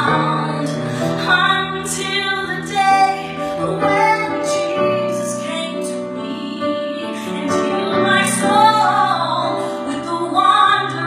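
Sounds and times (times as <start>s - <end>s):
piano accompaniment: 0.0s - 11.0s
woman singing gospel song: 0.0s - 11.0s.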